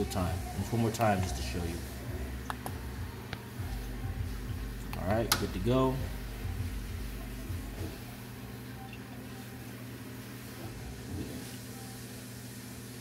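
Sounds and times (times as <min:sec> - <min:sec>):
aquarium equipment hum: 0:00.0 - 0:13.0.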